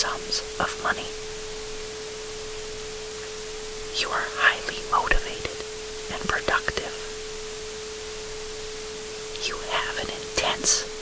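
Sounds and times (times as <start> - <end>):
person speaking softly: 0.0 - 1.2, 3.9 - 7.2, 9.4 - 11.0
noise hiss: 0.0 - 11.0.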